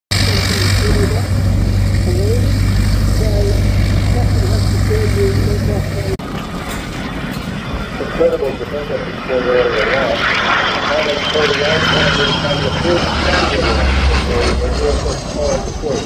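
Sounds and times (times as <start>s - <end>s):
aircraft piston engines droning: 0.1s - 16.0s
quieter engine sound: 0.1s - 16.0s
person talking: 2.0s - 6.2s.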